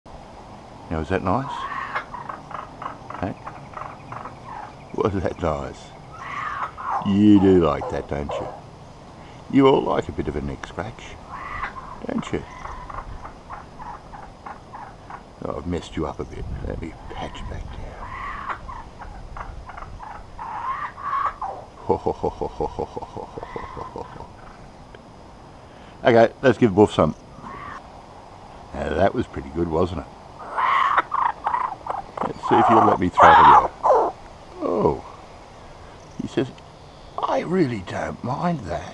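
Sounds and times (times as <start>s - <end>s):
kookaburra calls: 1.2s - 8.7s, 11.1s - 15.3s, 17.0s - 24.7s, 27.3s - 27.9s, 30.4s - 35.2s.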